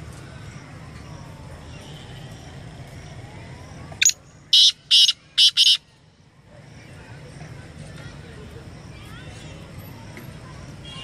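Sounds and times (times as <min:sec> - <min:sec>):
francolin calling harsh notes: 0:04.0 - 0:05.8.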